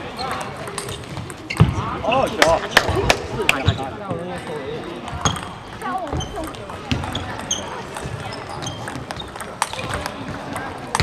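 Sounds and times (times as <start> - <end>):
table tennis ball clicking: 0.3 - 1.7.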